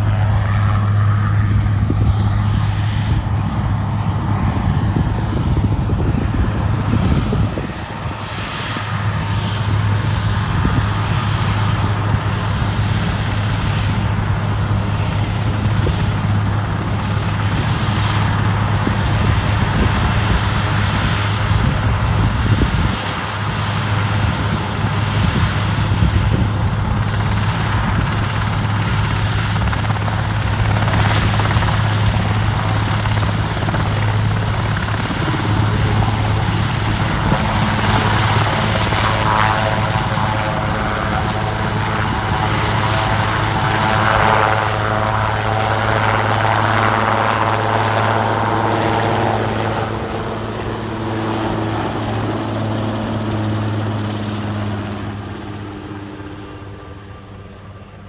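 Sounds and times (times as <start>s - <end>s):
helicopter rotor beat and turbine whine: 0.0s - 58.0s.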